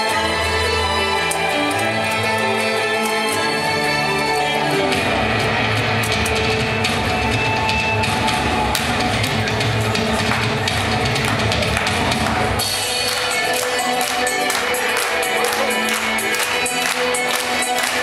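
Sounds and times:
irish dance music: 0:00.0 - 0:18.0
driving drum beat: 0:04.9 - 0:14.4.

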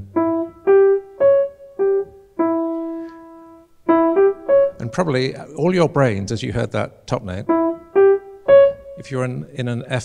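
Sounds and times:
piano melody: 0:00.0 - 0:09.6.

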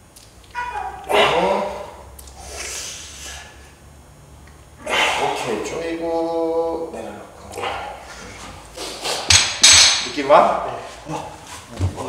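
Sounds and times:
men groaning with effort: 0:00.6 - 0:02.0, 0:04.8 - 0:05.7, 0:07.5 - 0:08.4, 0:11.0 - 0:11.4.

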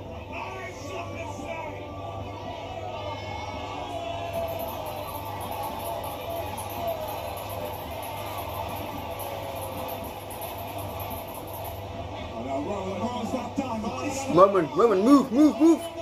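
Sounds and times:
crowd din: 0:00.0 - 0:16.0.

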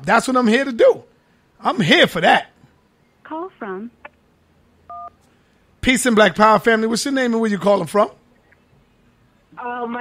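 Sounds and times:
man speaking: 0:00.0 - 0:02.6, 0:05.8 - 0:08.2
telephone keypad beep: 0:04.9 - 0:05.2.

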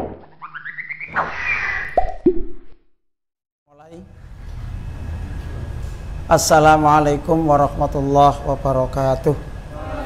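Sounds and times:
cartoon plops: 0:01.1 - 0:02.8.

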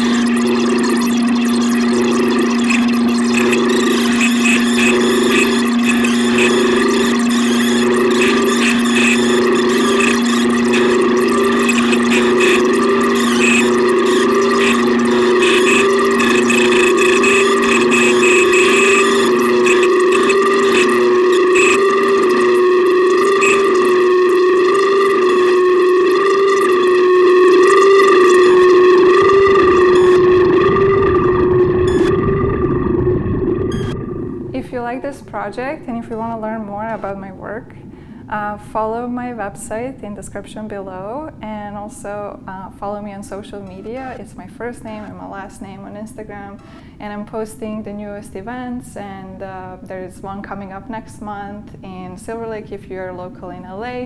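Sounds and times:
low rumble: 0:00.0 - 0:35.0
synthesizer drone tones: 0:00.0 - 0:37.2
crackly flickering texture: 0:00.0 - 0:37.6.

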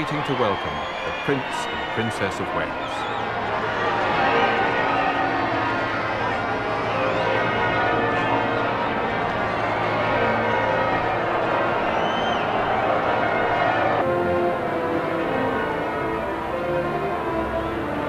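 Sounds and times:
large crowd noise: 0:00.0 - 0:18.0.

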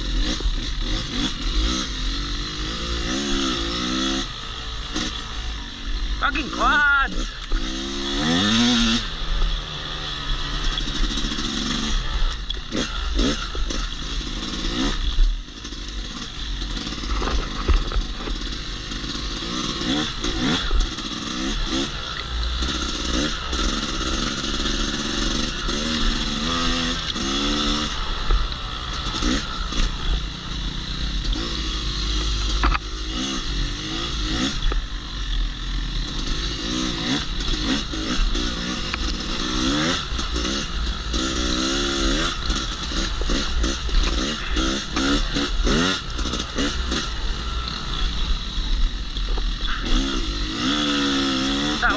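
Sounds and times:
dirt bike engine revving: 0:00.0 - 0:51.9.

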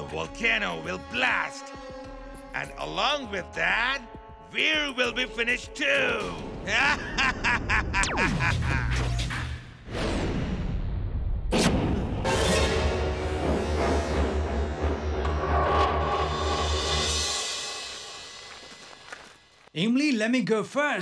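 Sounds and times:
dramatic cartoon music: 0:00.0 - 0:18.6.

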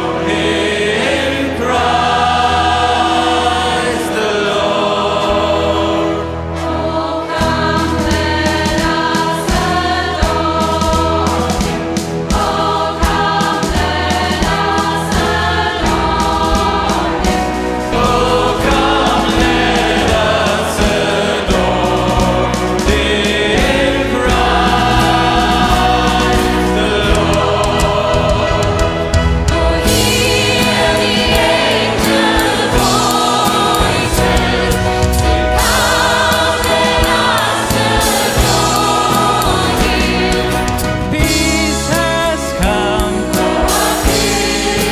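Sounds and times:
steady drum beat: 0:00.0 - 0:05.6, 0:06.6 - 0:44.9
choir singing gospel song: 0:00.0 - 0:44.9
pop band playing: 0:00.0 - 0:44.9.

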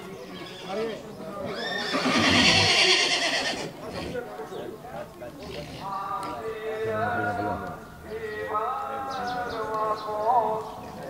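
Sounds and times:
horse whinnying: 0:00.4 - 0:04.2.

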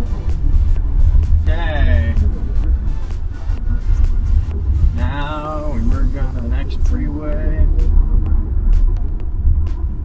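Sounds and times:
music with light beat: 0:00.0 - 0:10.0.

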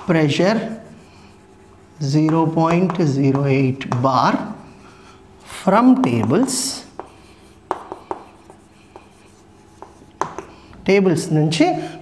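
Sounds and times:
chalk scratching on chalkboard: 0:00.3 - 0:03.4, 0:06.2 - 0:10.6
chalk tapping on chalkboard: 0:00.6 - 0:04.0, 0:06.0 - 0:10.6.

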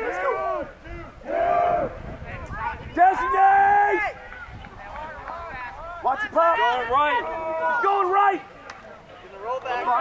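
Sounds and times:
people shouting calls: 0:00.0 - 0:10.0.

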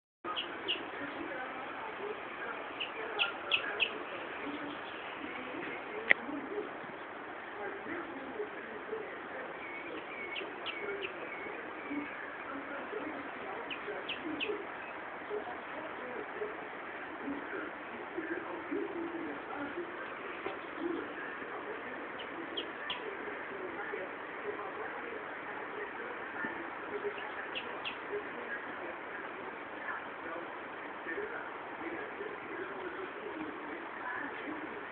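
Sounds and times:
birds chirping: 0:00.2 - 0:34.9
steady background hiss: 0:00.3 - 0:34.9
high bird chirps: 0:02.8 - 0:04.0.

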